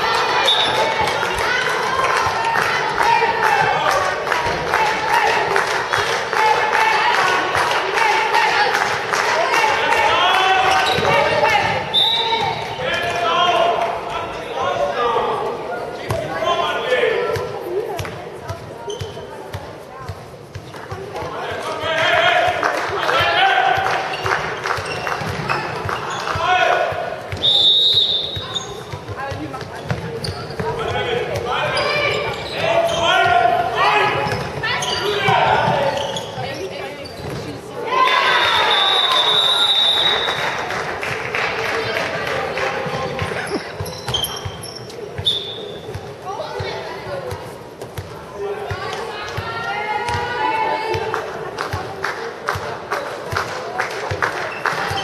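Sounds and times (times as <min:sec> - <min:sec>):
ball bouncing on court floor: 0:23.7 - 0:27.4, 0:28.3 - 0:33.4, 0:34.1 - 0:37.6, 0:45.9 - 0:50.3.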